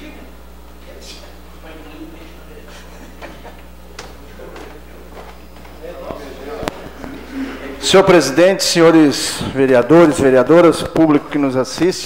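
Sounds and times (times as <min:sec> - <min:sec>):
faint murmured voices: 0:00.0 - 0:08.3
steady low hum: 0:00.0 - 0:12.0.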